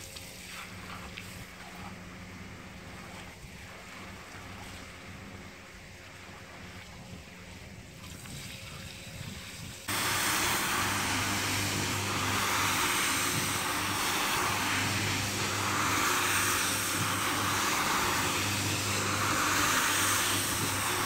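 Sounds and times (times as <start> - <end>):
brush swishing water and foam: 9.9 - 21.0
floor scrubber motor hum: 9.9 - 21.0.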